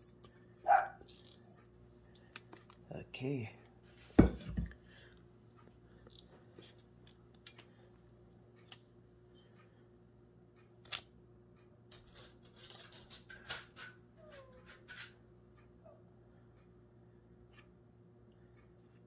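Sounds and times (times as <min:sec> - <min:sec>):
low steady hum: 0:00.0 - 0:19.0.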